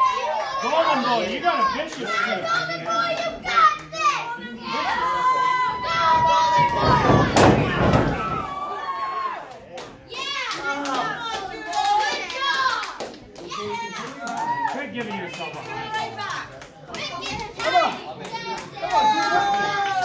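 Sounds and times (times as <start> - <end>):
children shouting: 0.0 - 9.5, 17.0 - 20.0.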